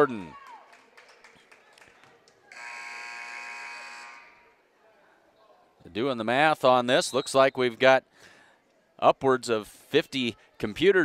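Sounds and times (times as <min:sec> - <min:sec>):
scoreboard buzzer blast: 0:02.5 - 0:04.4.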